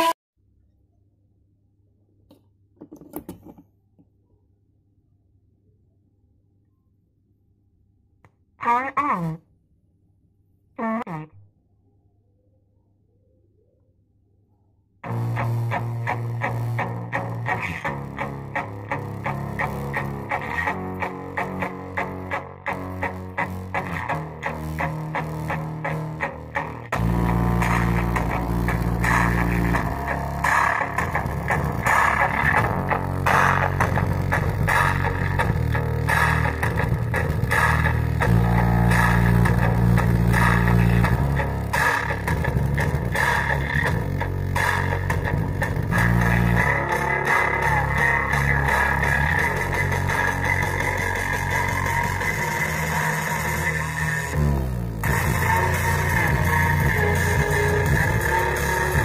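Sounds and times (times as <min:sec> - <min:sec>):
bass-heavy music through subwoofer: 0:15.0 - 0:59.0.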